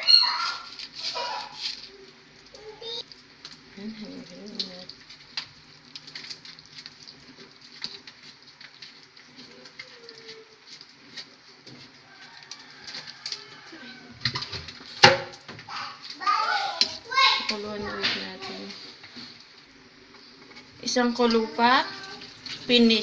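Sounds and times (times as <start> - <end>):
children's voices: 0.0 - 1.7, 2.6 - 3.0, 9.5 - 10.6, 15.7 - 18.8, 21.0 - 22.4
soup boiling in a pot: 0.0 - 23.0.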